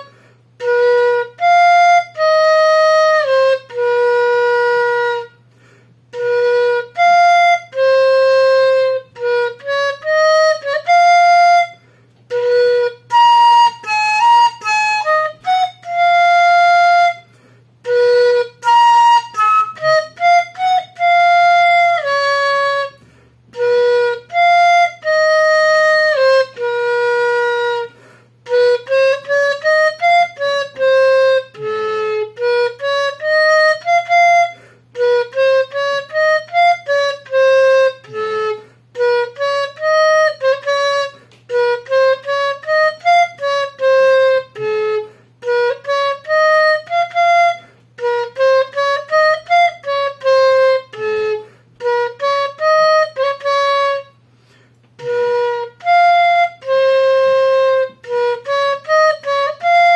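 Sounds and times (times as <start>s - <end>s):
bamboo flute melody: 0.0s - 59.9s.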